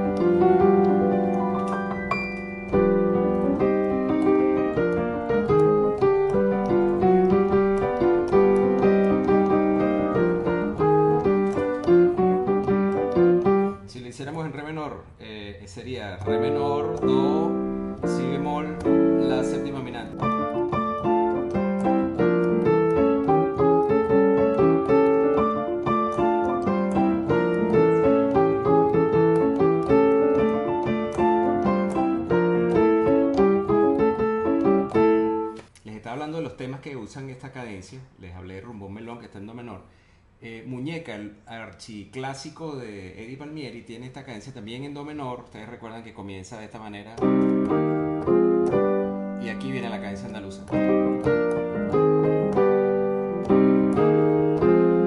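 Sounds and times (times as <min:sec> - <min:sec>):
piano playing salsa montuno: 0:00.0 - 0:14.9, 0:15.8 - 0:35.7, 0:47.0 - 0:55.0.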